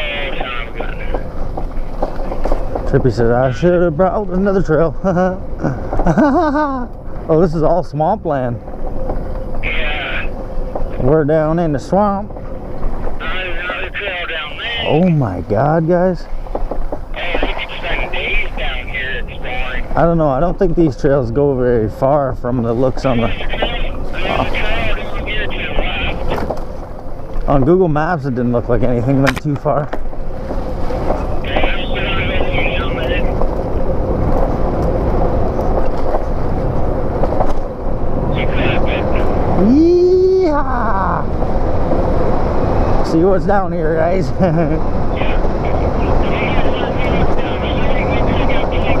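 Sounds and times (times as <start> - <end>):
tyre and wind noise: 0.0 - 7.4, 8.0 - 19.6, 22.6 - 49.0
bike rattling over bumps: 0.0 - 9.6, 16.2 - 17.1, 33.3 - 38.3
electric bike rolling on dirt: 0.0 - 14.2, 19.0 - 45.8
person speaking: 9.6 - 10.4, 13.2 - 15.6, 17.2 - 20.1, 22.5 - 26.4, 31.4 - 33.3.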